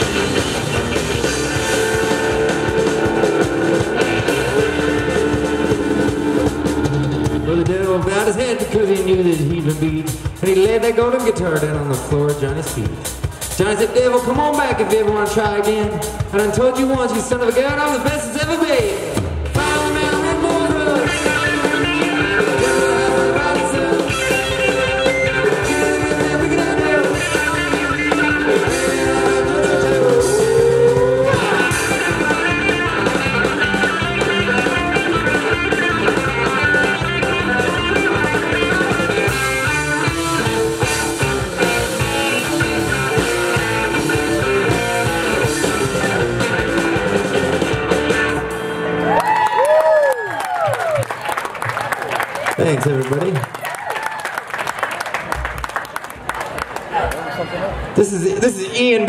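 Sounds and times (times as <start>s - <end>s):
electric guitar lead: 0.0s - 10.4s, 19.1s - 50.7s
bass guitar: 0.0s - 51.0s
drums: 0.0s - 59.0s.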